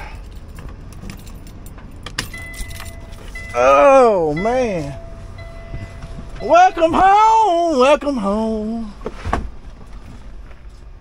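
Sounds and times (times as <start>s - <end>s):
diesel engine idling: 0.0s - 11.0s.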